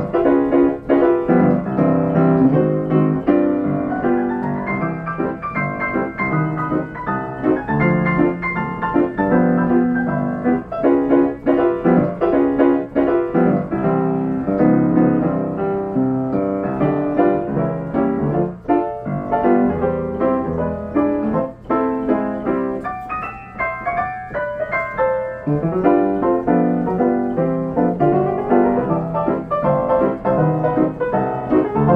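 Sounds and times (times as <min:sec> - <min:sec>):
player piano melody and chords: 0:00.0 - 0:31.9.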